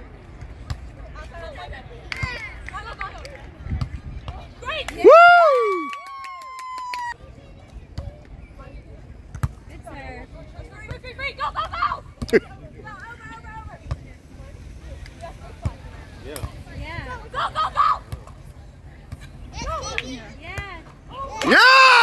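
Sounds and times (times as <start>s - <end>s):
players calling: 21.2s - 22.0s
person shouting: 21.4s - 22.0s.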